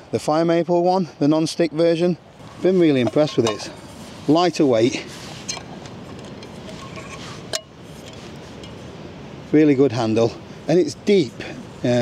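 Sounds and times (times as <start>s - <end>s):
frying pan being handled: 2.4s - 3.8s, 5.4s - 8.8s.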